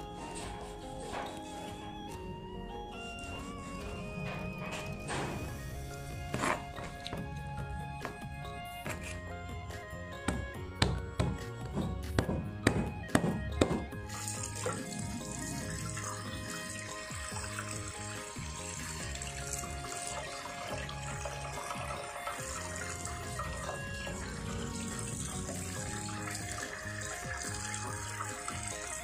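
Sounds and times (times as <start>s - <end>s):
background music: 0.0s - 29.0s
tap water running into sink: 14.1s - 29.0s.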